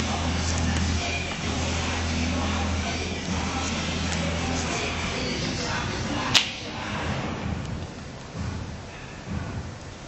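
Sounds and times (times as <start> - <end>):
large hall background noise: 0.0 - 10.0
sharp snap: 6.3 - 6.6.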